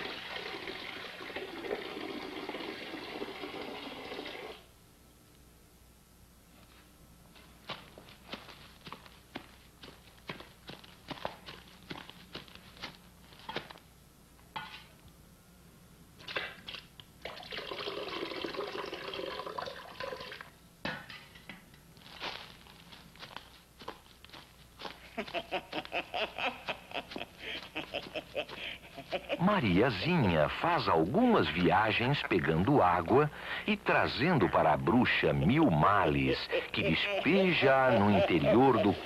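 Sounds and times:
water pouring from a bucket: 16.7s - 20.5s.

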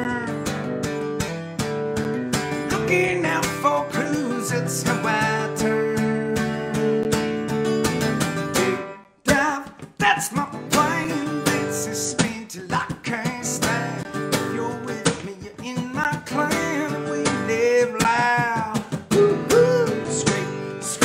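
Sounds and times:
man singing: 0.0s - 0.7s, 2.6s - 7.4s, 8.8s - 21.0s
acoustic guitar strumming: 0.0s - 21.0s.

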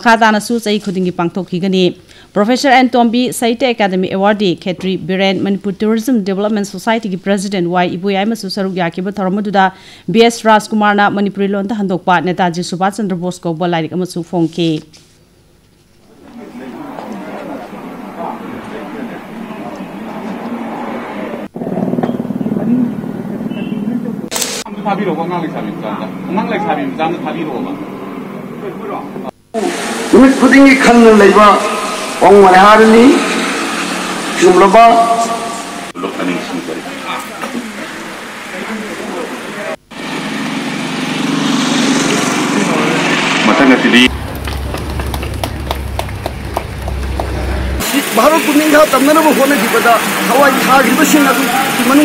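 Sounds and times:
voices of people at a gathering: 16.2s - 21.5s
short sharp burst of noise: 24.3s - 24.8s
man speaking: 28.7s - 33.3s, 34.4s - 37.5s, 47.5s - 52.0s
small engine running: 39.9s - 52.0s
person speaking: 47.3s - 52.0s.

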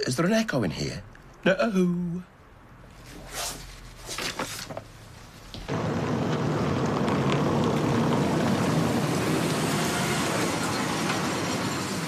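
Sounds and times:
tyres rumbling on cobblestones: 5.6s - 12.0s
car engine: 5.7s - 12.0s.

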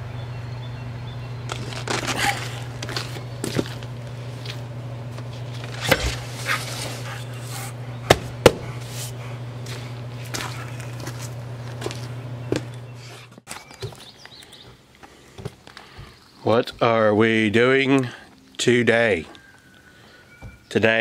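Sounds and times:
steady low hum: 0.0s - 21.0s
footsteps: 1.5s - 17.1s
sharp knocks: 8.1s - 8.7s.

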